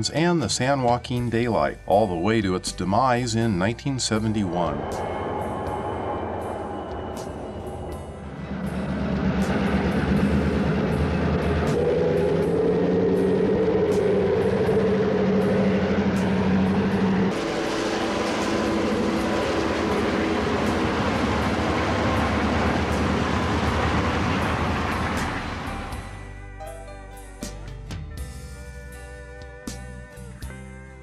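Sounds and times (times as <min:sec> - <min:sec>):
diesel locomotive engine drone: 0:03.3 - 0:26.8
noisy diesel drone: 0:03.4 - 0:26.4.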